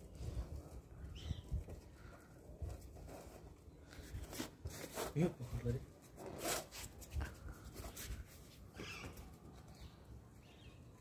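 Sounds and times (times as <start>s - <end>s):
paws scrabbling on concrete: 6.0s - 10.7s.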